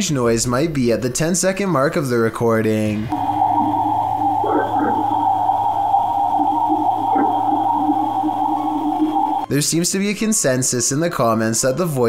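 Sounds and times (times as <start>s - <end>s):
faint strange sounds: 3.0s - 9.5s
electronic hum and hiss: 3.1s - 9.5s.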